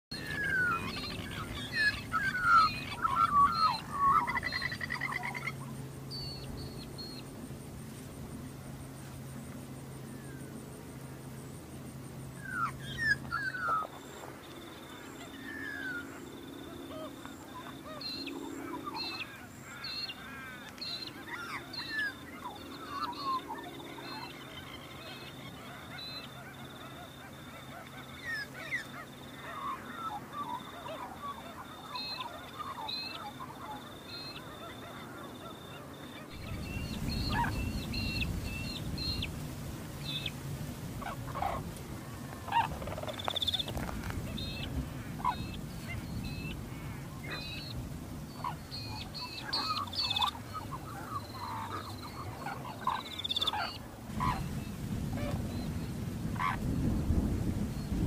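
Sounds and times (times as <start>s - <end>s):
cranes calling: 0.1s - 8.1s, 12.3s - 56.9s.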